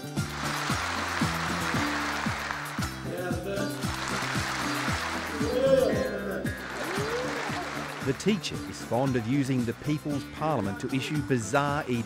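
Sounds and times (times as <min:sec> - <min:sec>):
audience applauding: 0:00.0 - 0:10.2
background music with sliding bass: 0:00.0 - 0:12.0.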